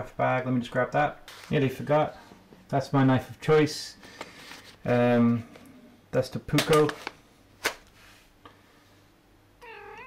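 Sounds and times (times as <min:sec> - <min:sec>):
cat meowing: 0:09.6 - 0:10.0.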